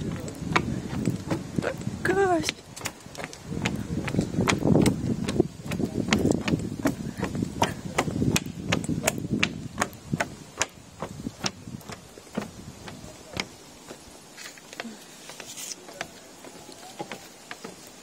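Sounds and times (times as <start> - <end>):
footsteps on wooden boards: 0.0 - 18.0.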